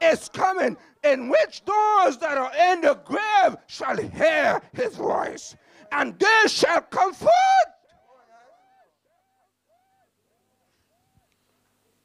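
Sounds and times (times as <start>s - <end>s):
echoing man's voice over pa: 0.0s - 8.6s.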